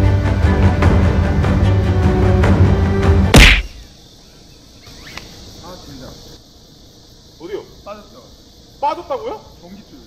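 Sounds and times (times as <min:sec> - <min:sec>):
faint insect hiss: 0:00.0 - 0:10.0.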